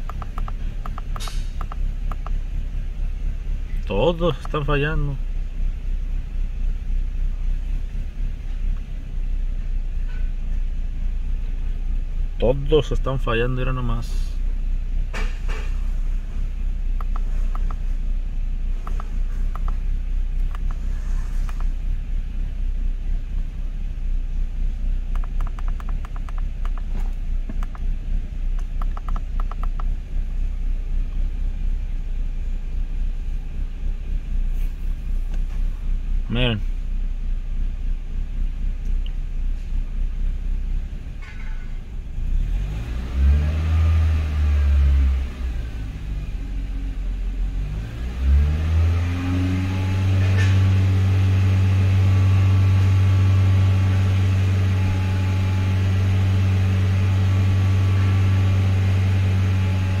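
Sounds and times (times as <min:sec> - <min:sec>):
car engine idling rough: 0:00.0 - 0:42.6
car engine revving: 0:42.1 - 1:00.0.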